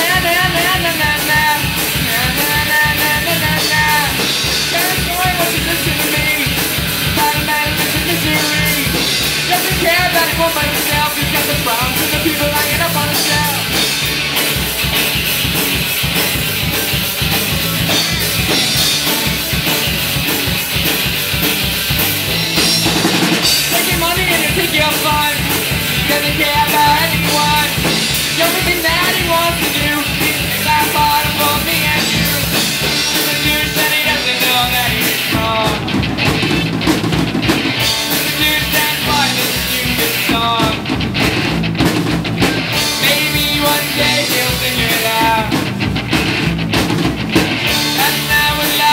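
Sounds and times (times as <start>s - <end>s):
bass guitar: 0.0s - 48.9s
drum kit beat: 0.0s - 48.9s
electric guitar: 0.0s - 48.9s
punk rock band playing: 0.0s - 48.9s.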